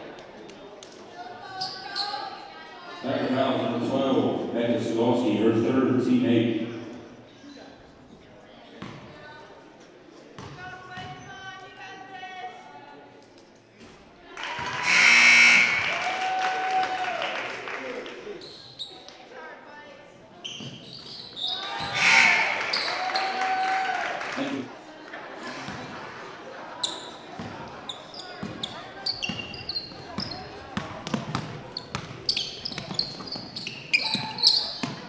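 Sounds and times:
spectators' voices: 0.0 - 35.0
crowd cheering and shouting: 14.4 - 17.4, 21.6 - 24.4.

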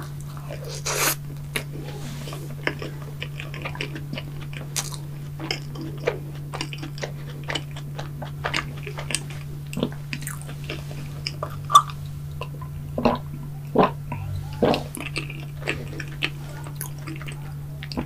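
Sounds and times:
chewing with wet mouth clicks: 0.0 - 14.0, 14.6 - 18.0
steady low hum: 0.0 - 18.0.

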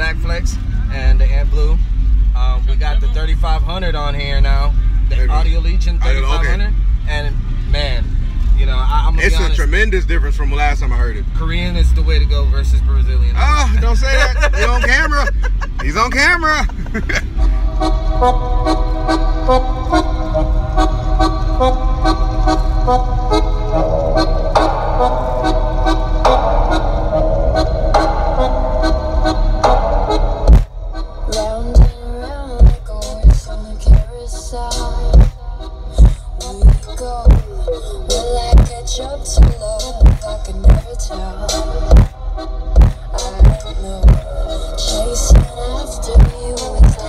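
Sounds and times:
deep bass hits: 0.0 - 47.0
loud music through car subwoofers: 8.6 - 47.0
vocal line: 13.4 - 16.3.

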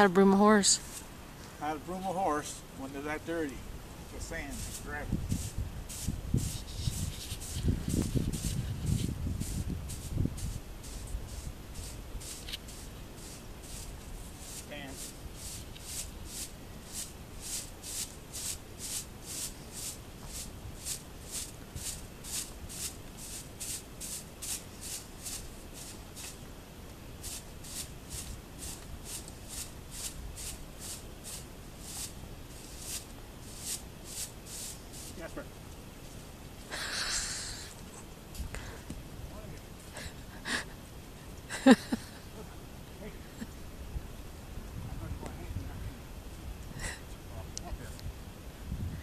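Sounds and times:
broom brushing horse's coat: 0.8 - 1.1, 4.2 - 26.4, 27.2 - 35.4.

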